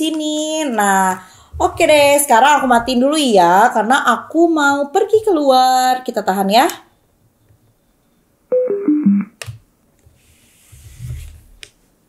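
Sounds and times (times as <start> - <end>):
short descending beeps: 8.5 - 9.4.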